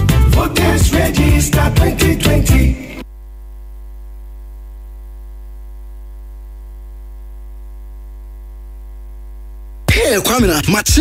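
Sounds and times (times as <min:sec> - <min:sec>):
music: 0:00.0 - 0:03.0, 0:09.9 - 0:11.0
electrical mains hum: 0:02.7 - 0:11.0.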